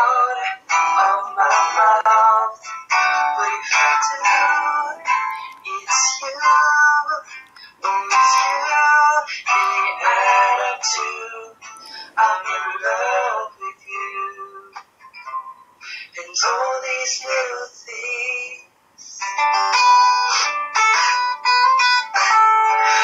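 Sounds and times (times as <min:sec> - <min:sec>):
man singing: 0:00.0 - 0:14.8, 0:15.9 - 0:19.6
acoustic guitar: 0:00.0 - 0:23.0.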